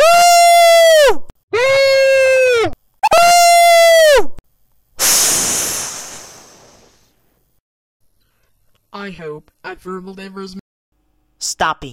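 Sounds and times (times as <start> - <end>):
hissing noise burst: 5.0 - 7.2.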